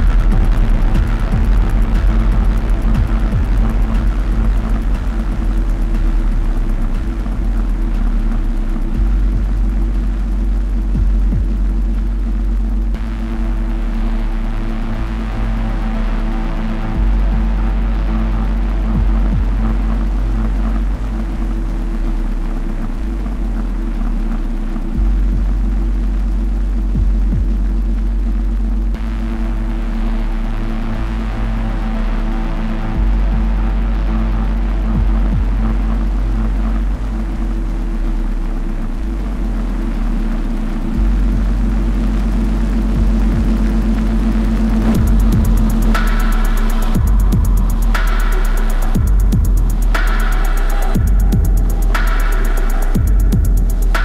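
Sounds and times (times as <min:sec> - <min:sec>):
dark droning electronic music: 0:00.0 - 0:54.0.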